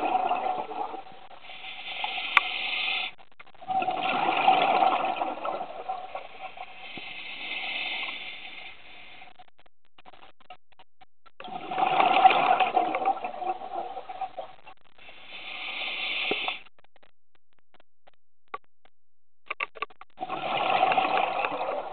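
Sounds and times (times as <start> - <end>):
bubbles from exhalation: 0.0 - 1.0, 3.6 - 6.2, 11.4 - 14.2, 20.2 - 21.9
regulator inhalation hiss: 1.4 - 3.2, 6.7 - 9.3, 15.0 - 16.6.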